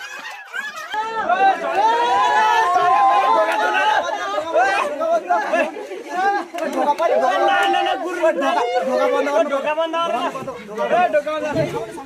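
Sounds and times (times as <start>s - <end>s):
loud overlapping chatter: 0.0s - 12.0s.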